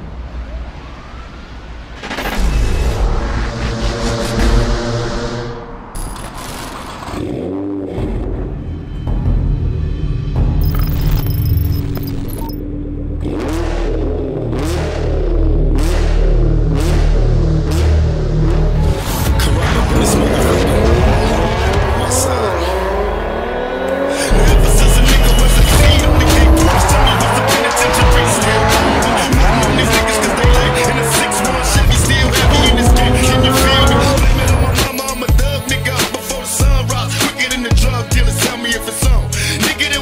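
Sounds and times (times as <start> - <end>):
rap over bass beat: 14.6 - 23.1, 23.9 - 40.0
car engine starting up: 19.0 - 34.9.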